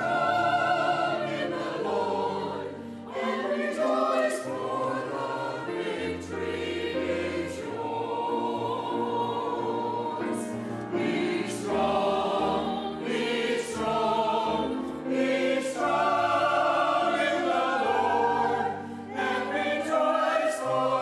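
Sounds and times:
church choir singing: 0:00.0 - 0:21.0.

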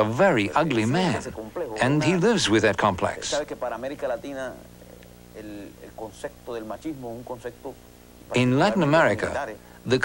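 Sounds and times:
low steady hum: 0:00.0 - 0:10.0
man speaking: 0:00.0 - 0:10.0.

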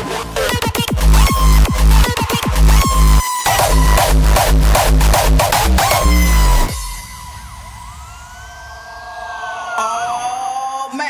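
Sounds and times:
electronic dance beat: 0:00.0 - 0:08.4
falling synth sweep: 0:00.0 - 0:09.8
siren-like synth tones: 0:02.8 - 0:10.0.

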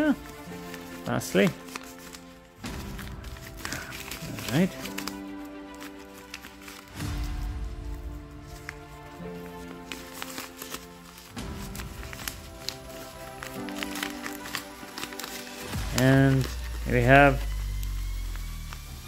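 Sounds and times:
plastic wrapper crinkling: 0:00.0 - 0:19.0
soft music of held chords: 0:00.0 - 0:19.0.

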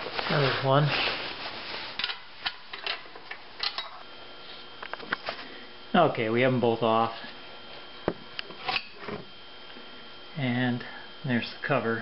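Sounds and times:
rustling handling noise: 0:00.0 - 0:03.8.

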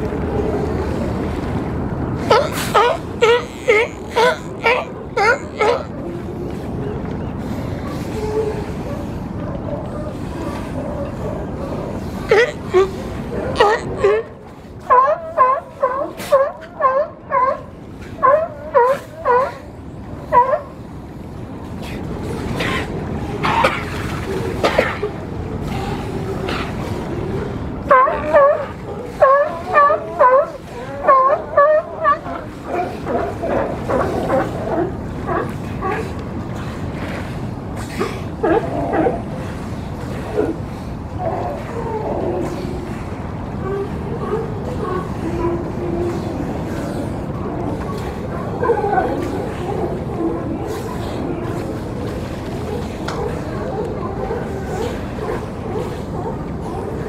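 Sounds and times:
sea lions barking: 0:00.0 - 0:57.0
wind and water rushing: 0:00.0 - 0:57.0.

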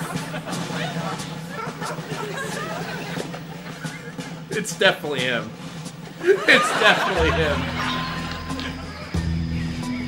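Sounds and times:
steady musical drone: 0:00.0 - 0:10.0.

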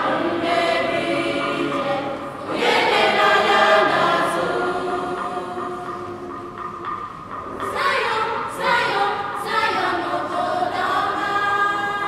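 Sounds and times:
choir singing: 0:00.0 - 0:06.6, 0:07.6 - 0:12.0.

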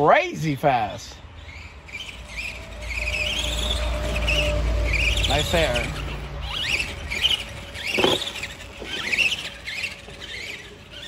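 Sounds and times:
rc truck electric motor whining: 0:01.1 - 0:11.0.

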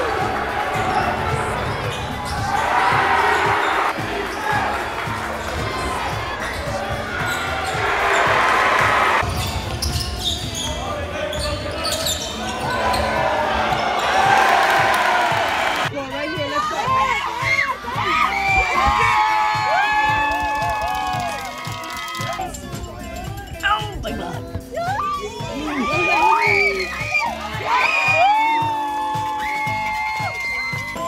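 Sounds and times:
crowd chatter: 0:00.0 - 0:20.8, 0:21.4 - 0:29.0.

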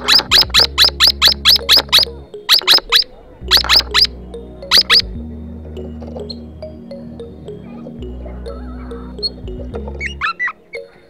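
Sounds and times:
parrots piping calls: 0:00.0 - 0:05.1
soft background music: 0:00.0 - 0:11.0.

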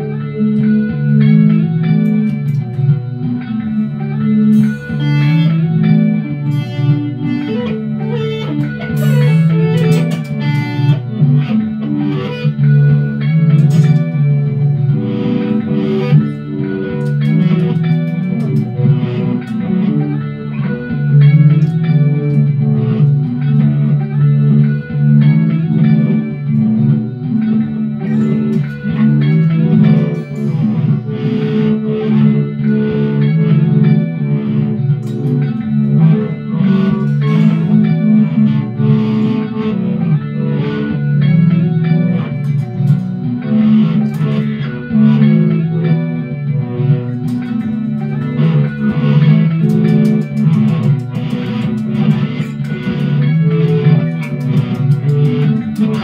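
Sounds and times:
electric guitar through amplifier: 0:00.0 - 0:56.0.

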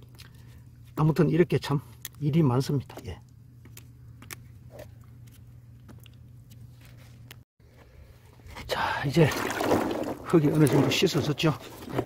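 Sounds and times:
faint steady hum: 0:00.0 - 0:10.2
peanuts scrubbed in muddy water: 0:09.1 - 0:12.0.

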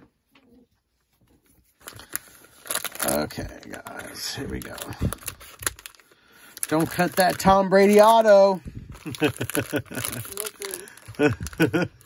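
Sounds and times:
foil wrappers crinkling: 0:01.7 - 0:12.0
laughter: 0:09.0 - 0:10.3, 0:11.1 - 0:12.0.

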